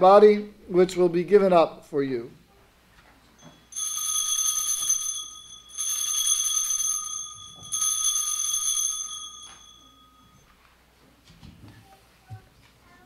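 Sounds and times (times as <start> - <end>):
altar bells ringing: 3.4 - 10.6.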